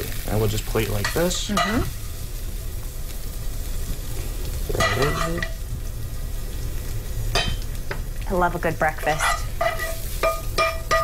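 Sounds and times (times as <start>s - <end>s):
egg sizzling in a skillet: 0.0s - 11.0s.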